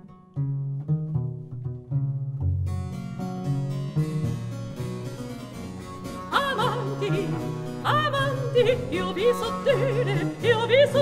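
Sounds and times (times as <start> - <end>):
bowed bass line: 0.0 - 11.0
harpsichord: 2.8 - 11.0.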